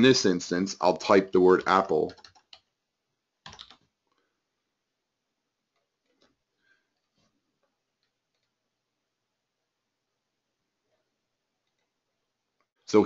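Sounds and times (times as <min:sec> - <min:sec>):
computer keyboard keystrokes: 0:02.0 - 0:02.7, 0:03.4 - 0:03.8.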